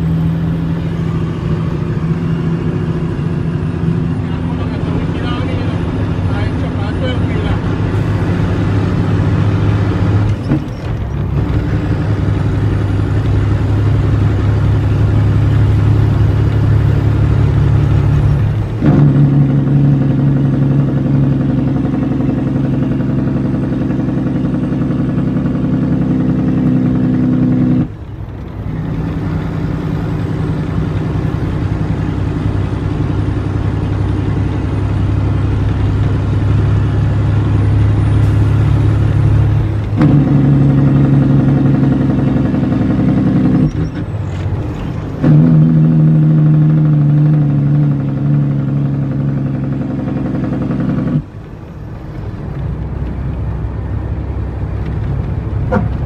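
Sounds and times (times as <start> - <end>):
truck diesel engine pulling: 0.0 - 56.0.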